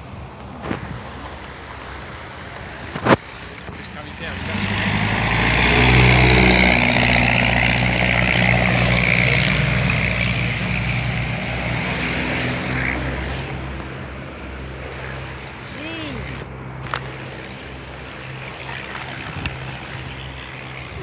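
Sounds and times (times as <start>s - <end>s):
low-flying aircraft engine: 0.0s - 21.0s.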